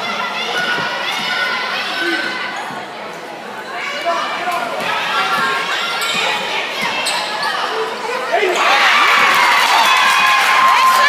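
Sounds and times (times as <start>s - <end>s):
spectators' voices and shouts: 0.0s - 11.0s.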